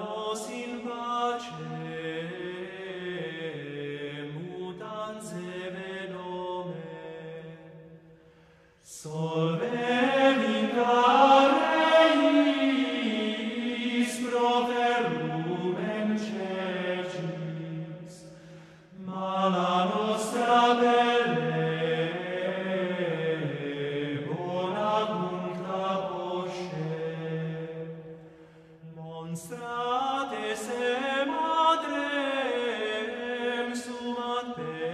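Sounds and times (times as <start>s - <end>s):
male choir chanting a cappella: 0.0s - 7.8s, 8.8s - 34.9s.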